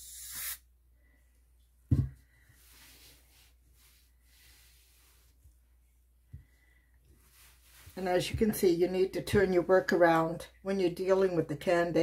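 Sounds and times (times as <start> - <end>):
canned air hissing: 0.0 - 0.7.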